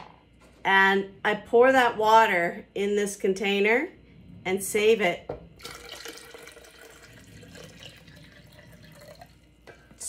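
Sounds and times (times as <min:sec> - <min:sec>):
water pouring into a plastic pitcher: 0:05.6 - 0:10.0.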